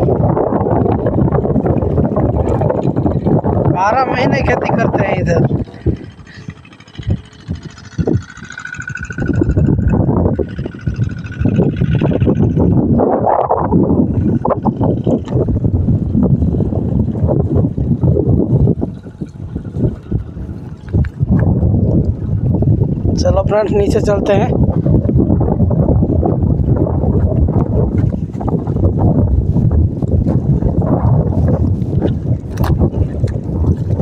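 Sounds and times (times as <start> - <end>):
gusty wind on microphone: 0.0 - 34.0.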